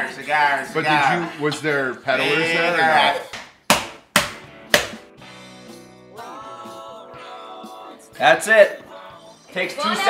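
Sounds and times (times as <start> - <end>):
knife whacking wrapped meat: 3.7 - 5.0.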